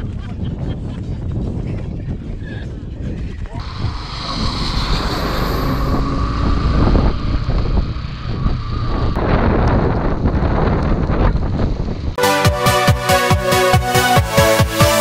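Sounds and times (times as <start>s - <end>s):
wind rush over microphone: 0.0s - 12.2s
tyre noise on wet road: 3.6s - 10.4s
motorcycle engine: 3.6s - 12.2s.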